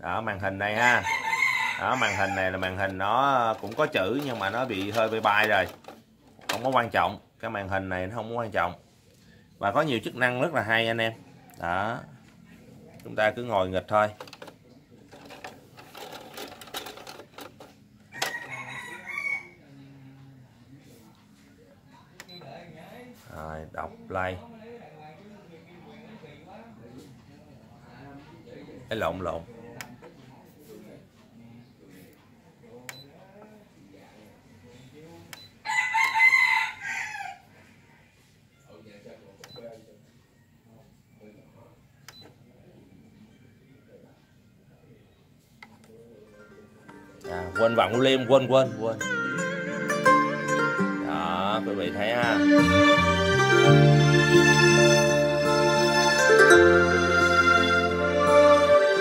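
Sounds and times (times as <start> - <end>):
rooster crowing: 0.8 - 2.8, 18.1 - 19.8, 35.6 - 38.3.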